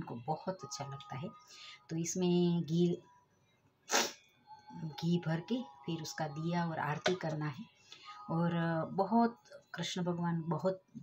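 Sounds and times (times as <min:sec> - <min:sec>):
woman's voice: 0:00.0 - 0:03.1, 0:04.6 - 0:11.0
sharp breath-like hiss: 0:03.9 - 0:04.2.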